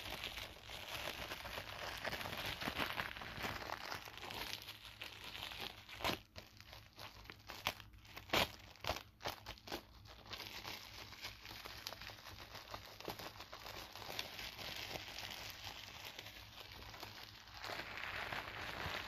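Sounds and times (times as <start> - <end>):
plastic film crinkling: 0.0 - 19.0.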